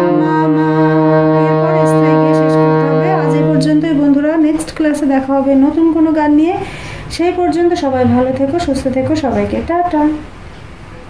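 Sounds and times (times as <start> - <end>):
harmonium held note: 0.0 - 4.2.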